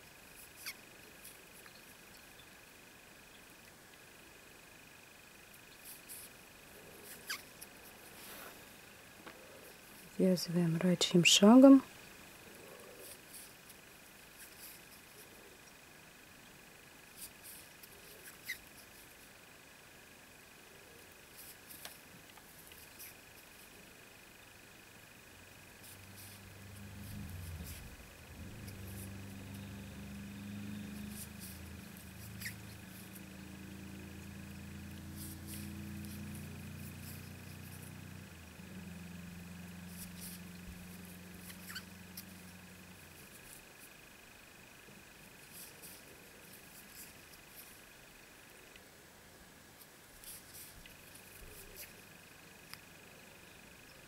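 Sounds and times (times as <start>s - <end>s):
faint high whine: 0.0s - 54.0s
low droning hum: 23.4s - 48.4s.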